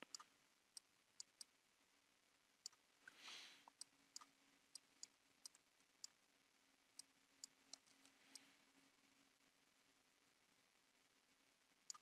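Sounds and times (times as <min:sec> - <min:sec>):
low steady hum: 0:00.0 - 0:12.0
short soft hiss: 0:03.1 - 0:03.7.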